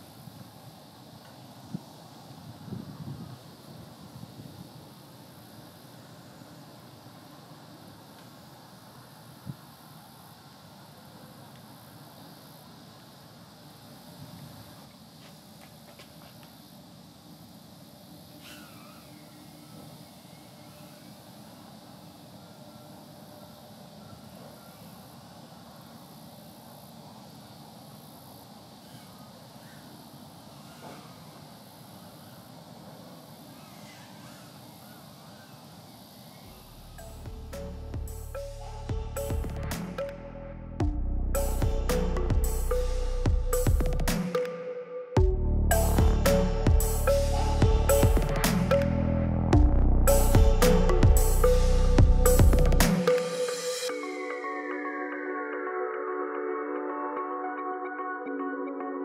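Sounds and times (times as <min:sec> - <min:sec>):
outdoor background noise: 0:00.0 - 0:58.4
distant drone motors whining: 0:17.9 - 0:25.4, 0:32.1 - 0:54.1.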